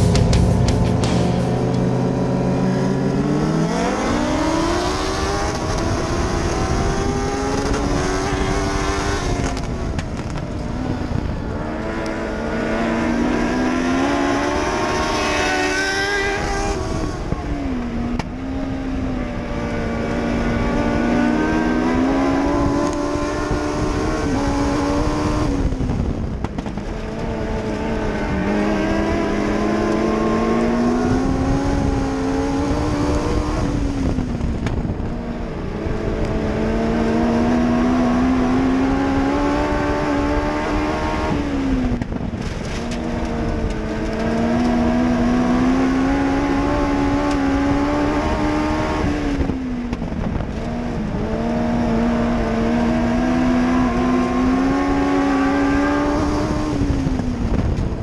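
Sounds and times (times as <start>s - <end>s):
race car engine revving: 0.0s - 58.0s.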